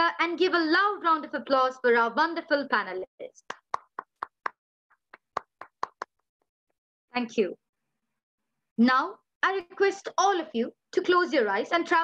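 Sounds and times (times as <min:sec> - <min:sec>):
hand clapping: 0:03.4 - 0:06.3.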